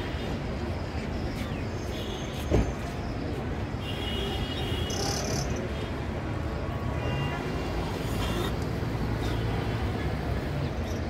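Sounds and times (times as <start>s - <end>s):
traffic engines rumbling: 0.0s - 11.0s.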